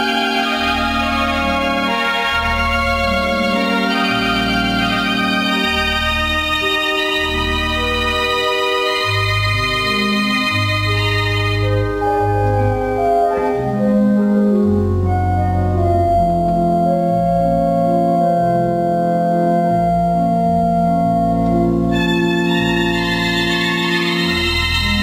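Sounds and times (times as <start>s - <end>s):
pipe organ playing chords: 0.0s - 25.0s.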